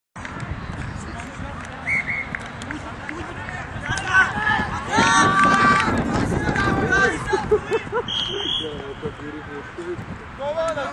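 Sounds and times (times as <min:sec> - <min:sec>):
voices shouting and calling out: 0:00.4 - 0:10.9.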